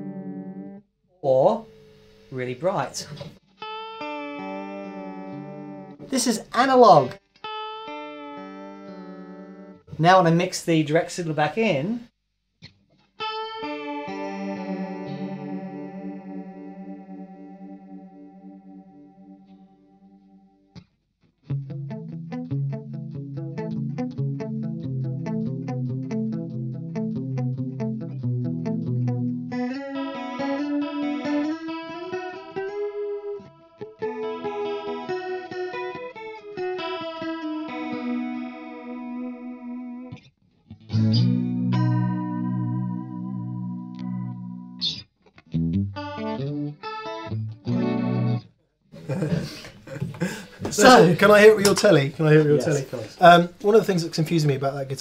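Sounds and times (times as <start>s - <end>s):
electric guitar with chorus effect: 0.0s - 0.8s, 3.0s - 6.2s, 7.1s - 10.0s, 12.6s - 20.9s, 21.5s - 51.2s.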